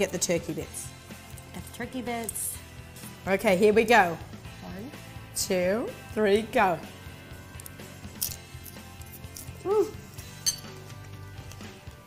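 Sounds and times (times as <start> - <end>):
soft background music: 0.0 - 12.0
metal fork clinking ceramic bowl: 10.4 - 10.7.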